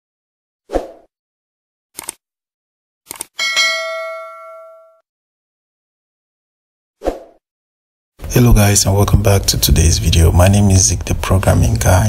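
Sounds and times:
short clicks: 2.0s - 2.2s, 3.1s - 3.4s
notification bell ding: 3.4s - 5.0s.

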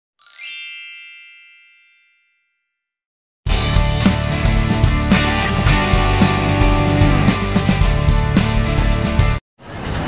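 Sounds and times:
shimmering chime: 0.2s - 2.6s.

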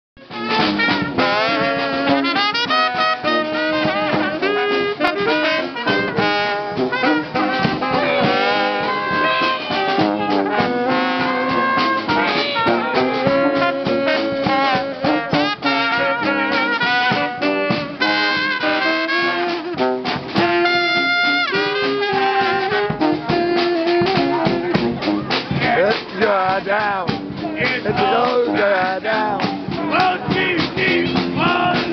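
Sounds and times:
brass band playing jazz: 0.2s - 31.9s
snare and bass drum beat: 0.2s - 31.9s.

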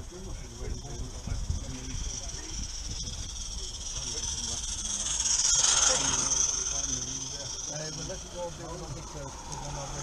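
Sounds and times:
steam locomotive hissing: 0.0s - 10.0s.

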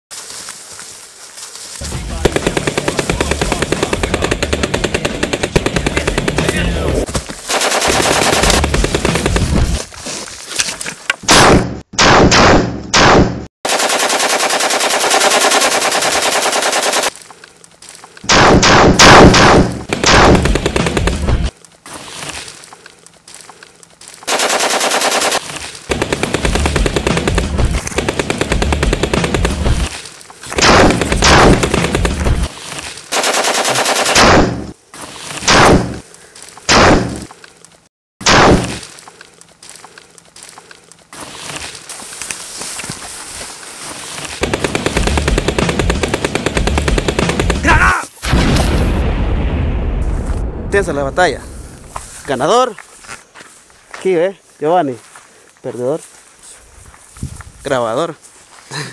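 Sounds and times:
automatic gunfire bursts: 7.5s - 9.4s, 11.3s - 17.1s, 18.3s - 21.3s, 24.3s - 29.8s, 30.6s - 32.4s, 33.1s - 34.6s, 44.4s - 47.7s
loud gunshot bangs: 11.3s - 13.5s, 18.3s - 21.3s, 30.6s - 32.4s, 33.7s - 34.7s, 35.5s - 36.0s, 36.7s - 37.3s, 38.2s - 38.8s.

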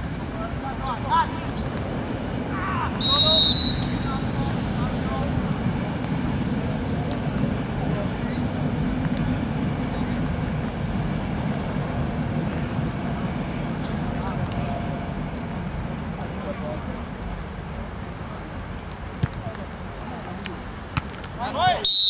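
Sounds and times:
steady low rumble: 0.0s - 21.0s
distant players shouting: 2.4s - 4.5s.

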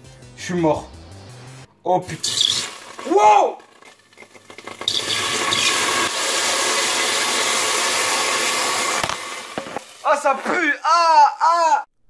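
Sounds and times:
liquid sizzling in hot pot: 2.1s - 10.5s.

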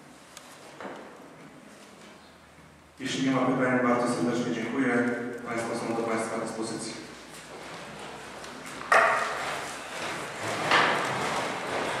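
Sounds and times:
people getting up from chairs: 0.1s - 2.8s, 7.0s - 12.0s.

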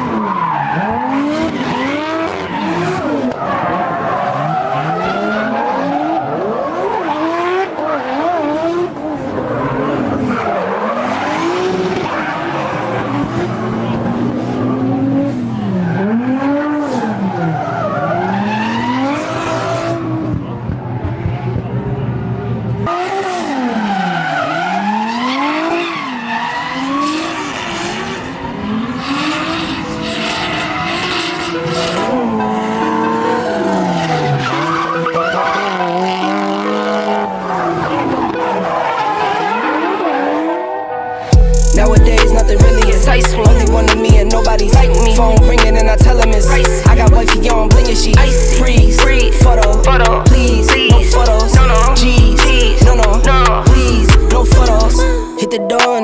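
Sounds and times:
car engines revving hard: 0.0s - 40.7s, 41.3s - 55.3s.

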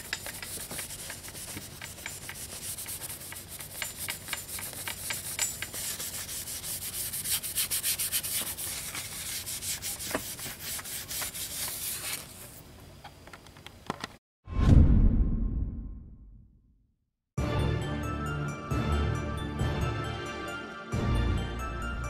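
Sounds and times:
scuff pad scratching painted surface: 0.0s - 12.6s.

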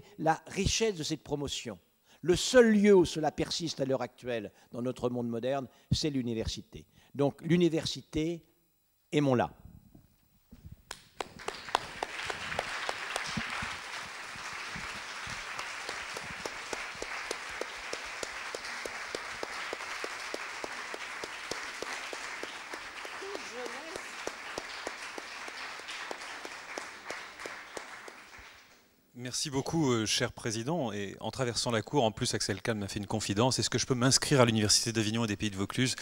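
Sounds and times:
audience applauding: 10.9s - 28.8s.

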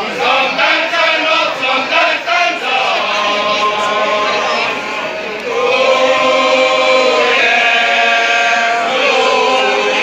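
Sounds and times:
group chanting long notes: 0.0s - 10.0s.

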